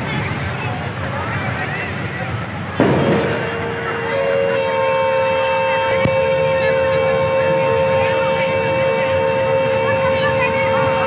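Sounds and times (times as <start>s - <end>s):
crowd babble: 0.0s - 11.0s
electronic horn chord: 2.8s - 11.0s.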